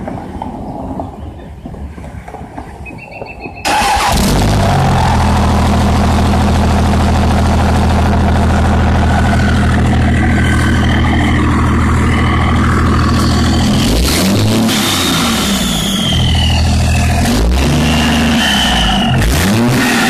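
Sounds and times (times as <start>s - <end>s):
diesel engine starting and idling: 3.6s - 20.0s.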